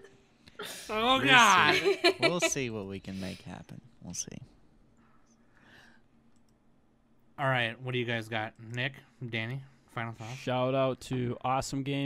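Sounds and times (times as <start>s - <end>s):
faint clicks: 6.3s - 6.6s.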